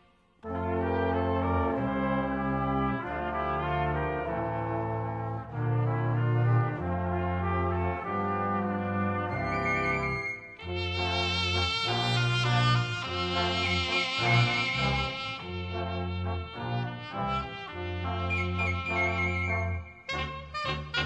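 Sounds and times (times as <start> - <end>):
brass-led ensemble music: 0.0 - 21.0.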